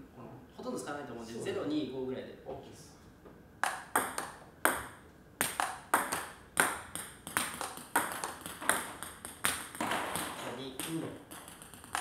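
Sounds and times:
ping-pong ball clicking: 3.6 - 12.0.

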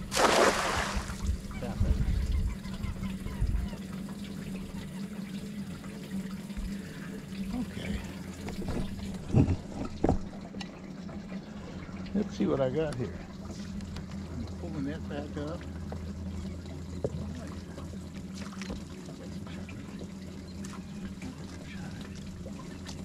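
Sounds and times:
net splashing into water: 0.0 - 1.3
low hum: 0.0 - 23.0.

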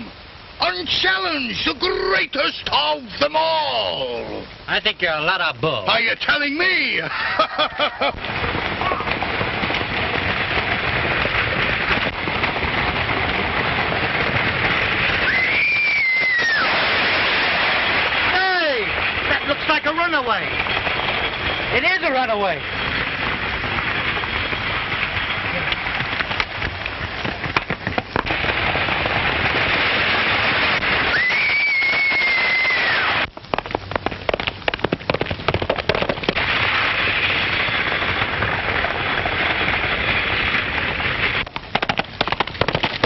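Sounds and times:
horses galloping: 0.0 - 43.0.

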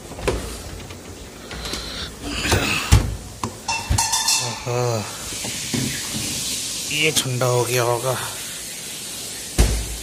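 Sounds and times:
steady hiss: 0.0 - 10.0
freezer door thump: 9.6 - 10.0.

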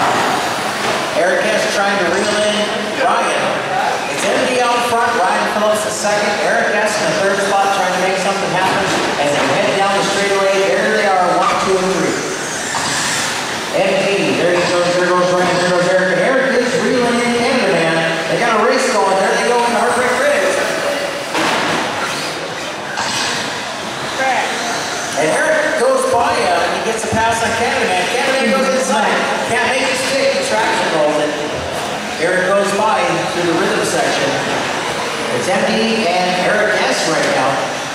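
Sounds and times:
rc truck motors whining: 11.3 - 14.0, 21.9 - 26.1.

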